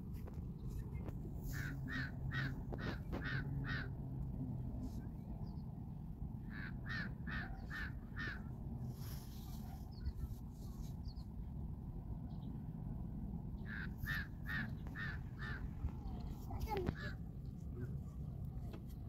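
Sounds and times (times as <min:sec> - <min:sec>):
bird calling: 0:01.4 - 0:04.0, 0:06.4 - 0:10.3, 0:13.6 - 0:17.2.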